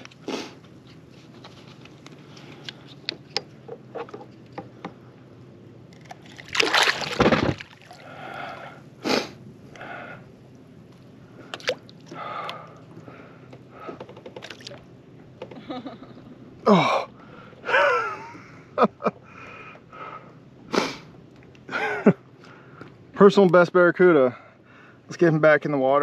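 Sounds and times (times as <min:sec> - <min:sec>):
fish splashing in water: 0:06.2 - 0:08.6.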